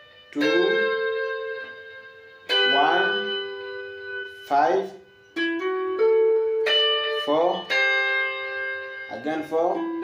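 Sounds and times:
clean electric guitar picking: 0.0 - 10.0.

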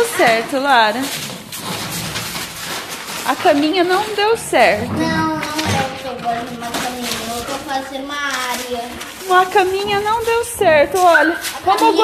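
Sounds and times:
paper rustling and crinkling: 0.0 - 12.0.

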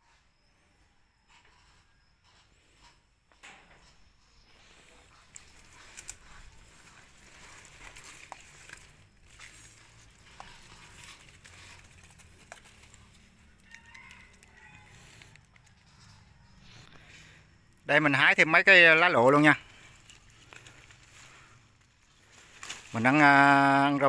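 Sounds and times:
plant stems rustling and snapping: 4.9 - 16.9, 18.4 - 24.0.

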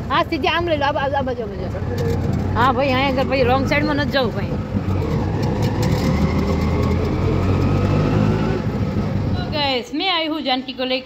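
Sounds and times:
auto-rickshaw engine droning: 0.0 - 10.0
woman speaking: 9.4 - 11.0.

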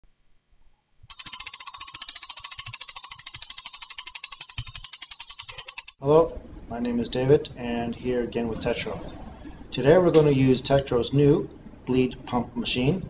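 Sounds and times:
rapid ticking clicks: 1.1 - 6.0
speech: 6.0 - 9.2, 9.8 - 13.0.

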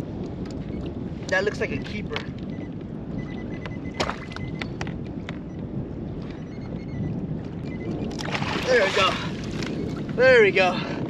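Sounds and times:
wind buffeting microphone: 0.0 - 11.0
water against boat hull: 3.2 - 5.5, 7.4 - 10.2.

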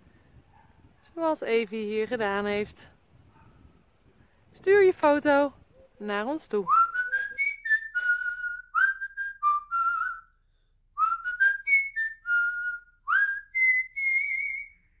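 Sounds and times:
person whistling a tune: 6.7 - 10.4, 11.0 - 15.0.

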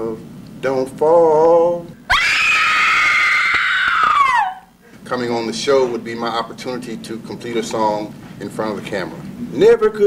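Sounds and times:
woman screaming: 2.1 - 4.7.

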